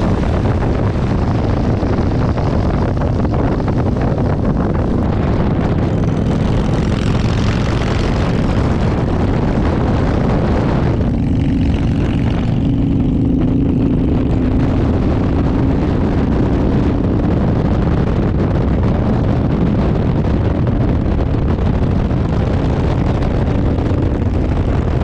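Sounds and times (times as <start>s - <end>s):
motorcycle engine running: 0.0s - 25.0s
wind noise on microphone: 0.0s - 25.0s.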